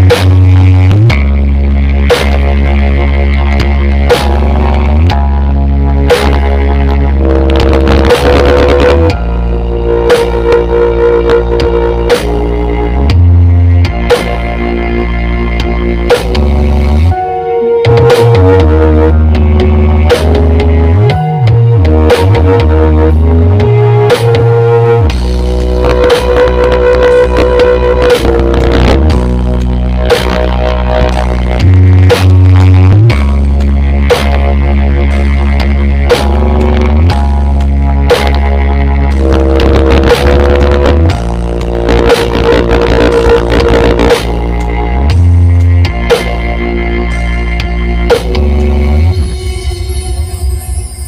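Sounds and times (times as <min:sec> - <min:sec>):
loud electronic dance music: 0:00.0 - 0:51.0.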